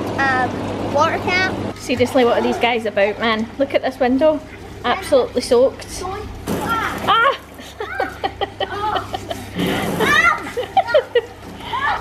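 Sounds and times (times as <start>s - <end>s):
children shouting and laughing: 6.2s - 12.0s
water splash: 6.4s - 7.7s
water thrown against window: 6.4s - 8.2s, 9.5s - 11.6s.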